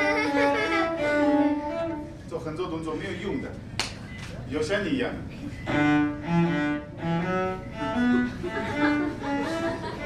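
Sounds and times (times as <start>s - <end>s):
cello bowed notes: 0.0s - 2.3s, 5.6s - 10.0s.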